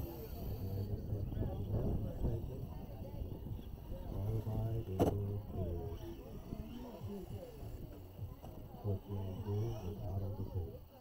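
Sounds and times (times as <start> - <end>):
muffled voices talking: 0.0 - 11.0.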